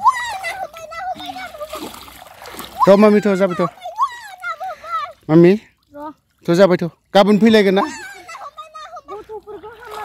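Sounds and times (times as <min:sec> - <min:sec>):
child calling out: 0:00.0 - 0:01.9, 0:02.8 - 0:05.2, 0:07.8 - 0:10.0
shallow water splashing: 0:00.0 - 0:10.0.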